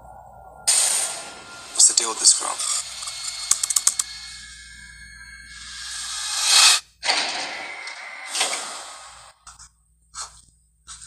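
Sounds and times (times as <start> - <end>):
sustained music drone: 0.0 - 9.4.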